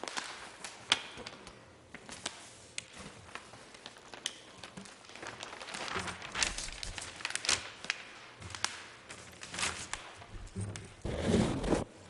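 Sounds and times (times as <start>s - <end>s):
large paper sheets rustling: 0.0s - 12.0s.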